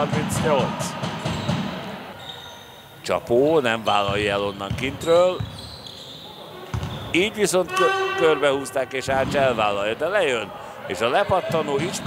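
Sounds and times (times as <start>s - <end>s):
basketball bouncing: 0.0s - 2.0s, 4.1s - 5.7s, 6.7s - 8.0s
sports hall ambience: 0.0s - 12.0s.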